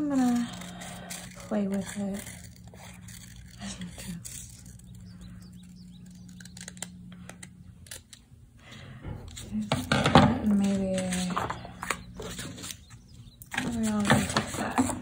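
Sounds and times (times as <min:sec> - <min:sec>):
scissors snipping paper: 0:00.0 - 0:08.2
steady low hum: 0:00.0 - 0:15.0
paper rustling: 0:10.5 - 0:15.0.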